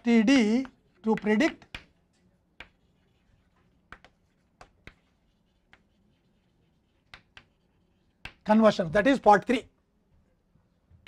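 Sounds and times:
chalk tap on blackboard: 0.4 - 2.0, 2.6 - 8.6.

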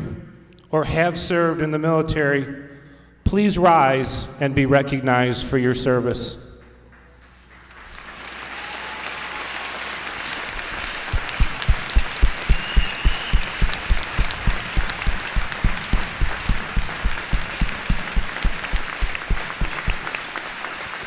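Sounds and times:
large crowd applauding: 7.4 - 21.0
person clapping close to microphone: 7.4 - 21.0.

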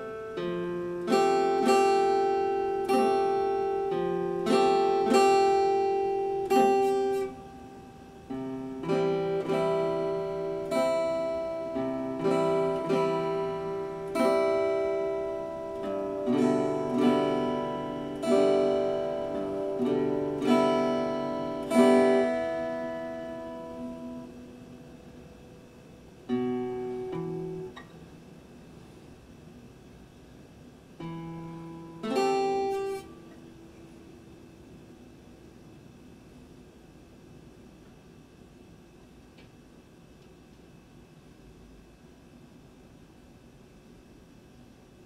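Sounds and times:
acoustic guitar plucked chords: 0.0 - 28.2, 31.0 - 34.8.

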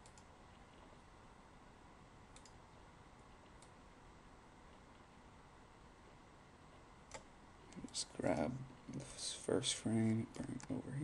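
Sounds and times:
computer mouse clicks: 0.0 - 1.0, 2.3 - 2.6, 3.3 - 3.8, 7.1 - 8.0
faint steady hiss: 0.0 - 11.0.

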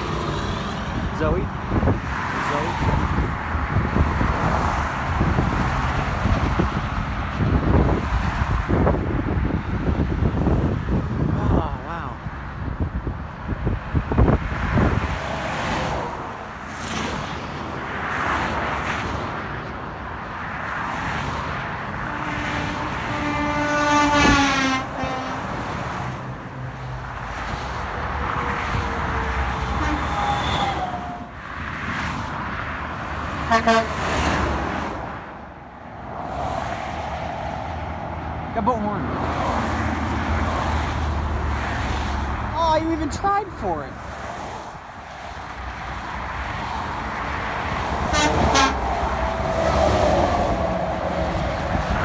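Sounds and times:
highway traffic passing: 0.0 - 52.0
truck air horn: 22.0 - 25.6, 29.6 - 31.2, 33.4 - 34.2, 48.0 - 49.4.

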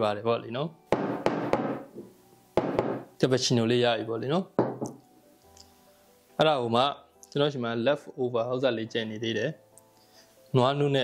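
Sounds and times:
ceramic cup knocking on wood: 1.0 - 3.1, 4.6 - 5.0.

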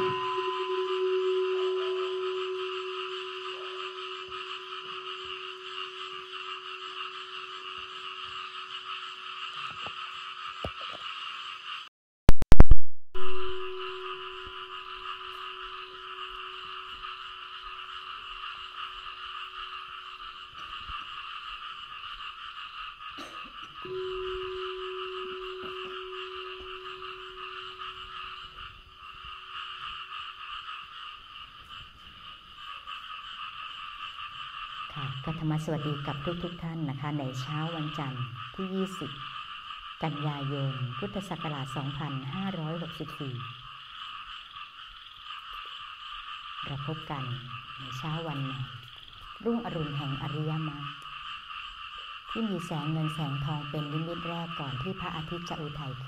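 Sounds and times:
low steady tone: 0.0 - 9.9, 12.5 - 20.7, 23.2 - 29.0
chorus of frogs calling: 0.0 - 11.9, 13.4 - 56.0.

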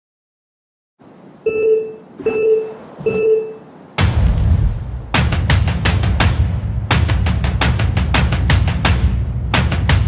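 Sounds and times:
electronic countdown beeps: 1.5 - 3.6.

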